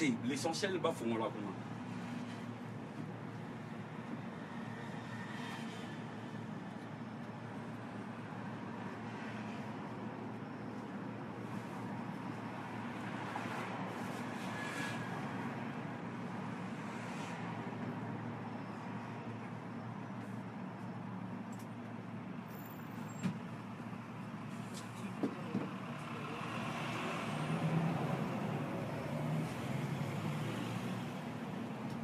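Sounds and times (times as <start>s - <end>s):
road traffic rumble: 0.0s - 32.0s.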